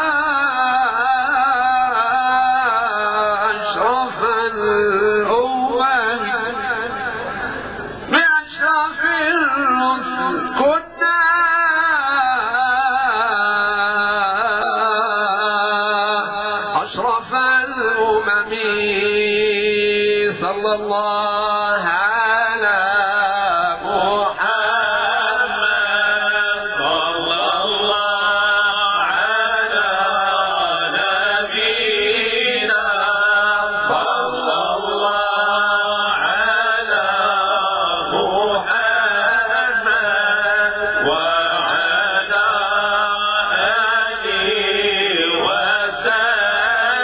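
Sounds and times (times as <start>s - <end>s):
men singing a chant: 0.0s - 7.4s, 8.1s - 47.0s.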